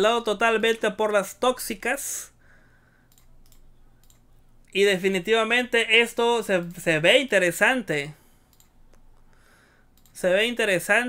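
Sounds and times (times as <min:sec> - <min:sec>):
faint clicks: 0:03.1 - 0:04.3, 0:08.5 - 0:10.2.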